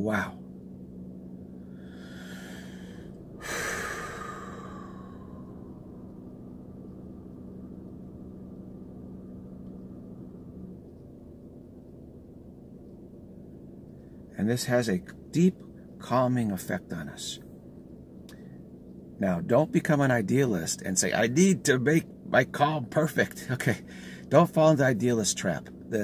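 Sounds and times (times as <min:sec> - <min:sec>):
steady low hum: 0:00.0 - 0:26.0
man breathing in and out: 0:01.6 - 0:06.0, 0:23.9 - 0:24.3.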